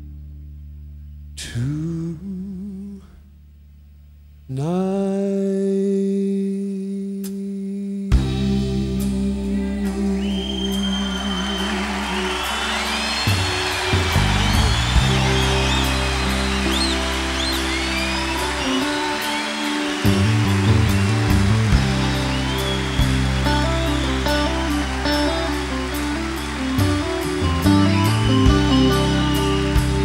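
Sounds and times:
bass notes: 0.0 - 4.6, 8.1 - 30.0
sliding electric guitar: 8.2 - 30.0.

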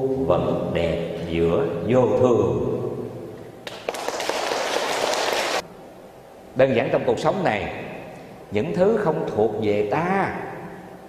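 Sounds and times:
audience applauding: 3.6 - 5.6.

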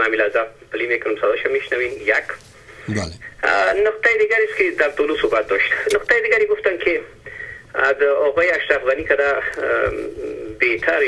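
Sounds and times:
person talking over telephone: 2.9 - 3.3.

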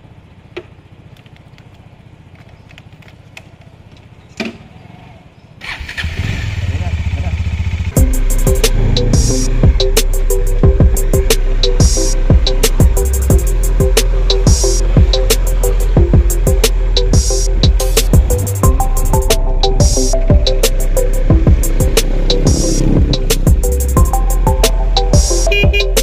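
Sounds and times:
motorcycle engine idling: 0.0 - 5.5, 6.6 - 26.0
loud music with drum beat: 8.0 - 26.0.

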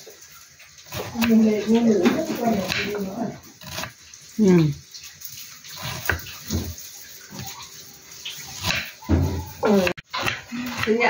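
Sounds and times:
knife chopping onion on wooden board: 0.9 - 4.0, 5.8 - 7.4, 8.4 - 11.0.

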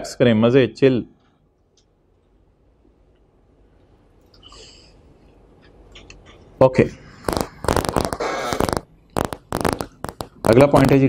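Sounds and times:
knocks and clicks at a desk: 9.2 - 10.4.

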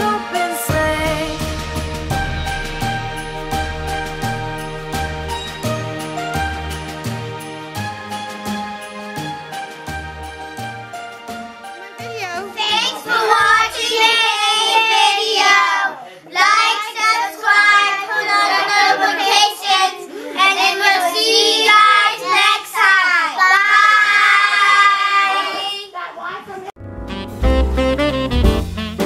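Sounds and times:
children singing in unison: 12.6 - 25.7.

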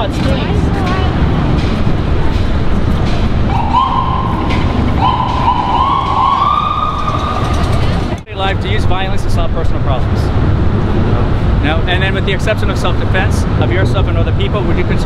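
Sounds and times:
low outdoor rumble: 0.0 - 15.0
distant siren wailing: 3.3 - 8.2.

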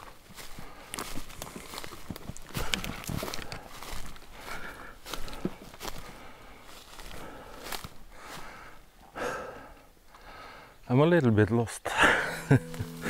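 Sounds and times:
footsteps through undergrowth: 0.0 - 8.7
twigs snapping: 1.0 - 4.0
brush rustling: 12.5 - 13.0.

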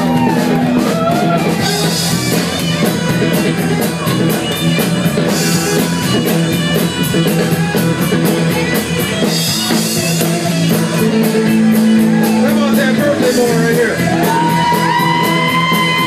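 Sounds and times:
drum kit with steady cymbal: 0.0 - 16.0
electric bass: 0.0 - 16.0
electric guitar: 0.0 - 16.0.

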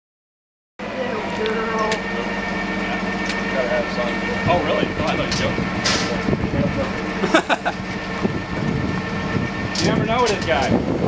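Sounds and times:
engine idling: 0.8 - 11.0.

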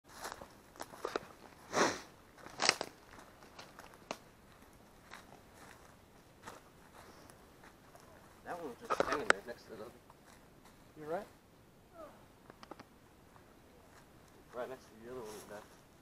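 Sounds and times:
footsteps crunching on dry brush: 0.1 - 9.2
sharp clicks: 12.4 - 12.9.

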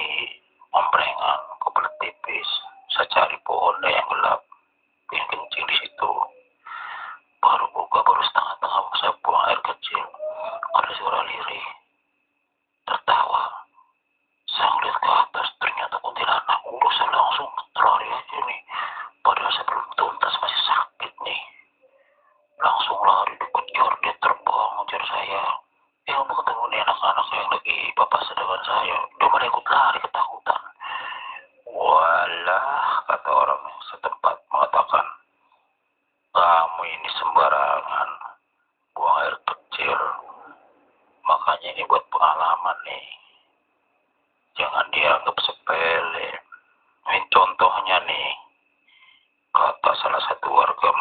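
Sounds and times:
man talking over radio: 0.0 - 4.4, 22.6 - 30.8, 36.4 - 38.3, 39.0 - 40.5, 41.3 - 43.2, 44.6 - 48.4, 49.6 - 51.0
faint high tone: 0.0 - 4.5, 7.6 - 11.8.

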